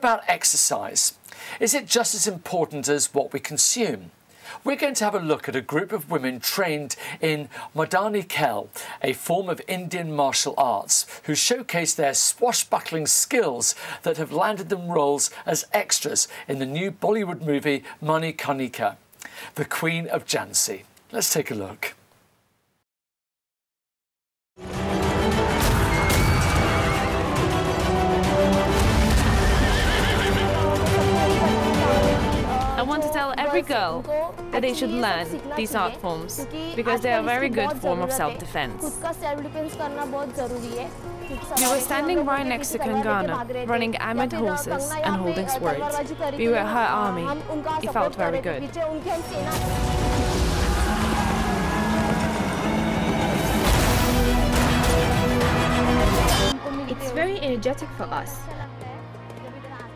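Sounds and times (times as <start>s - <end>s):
loud dramatic music: 24.6s - 33.7s, 49.1s - 57.4s
horse whinnying: 25.8s - 27.3s, 29.0s - 30.7s
horses galloping: 28.7s - 30.9s, 50.8s - 53.6s.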